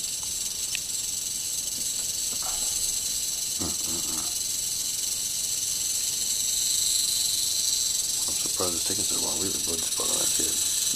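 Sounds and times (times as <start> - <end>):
rattlesnake rattling: 0.0 - 10.9.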